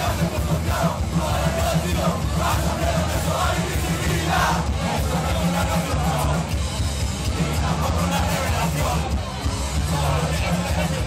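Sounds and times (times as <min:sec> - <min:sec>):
punk rock band playing live: 0:00.0 - 0:11.0.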